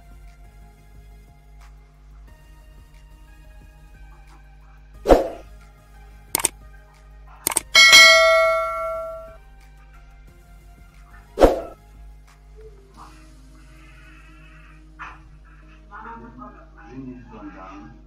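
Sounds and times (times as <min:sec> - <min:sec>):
bright bell ding: 0:07.5 - 0:09.4
quick double clicks: 0:07.5 - 0:09.4.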